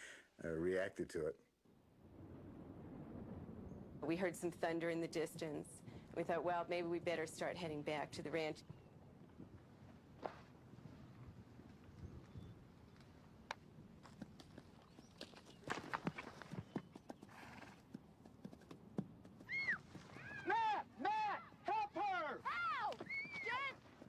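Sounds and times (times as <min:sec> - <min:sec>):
horse hooves clip-clopping: 0:08.6 - 0:20.4, 0:21.2 - 0:24.0
horse whinnying: 0:19.4 - 0:20.5.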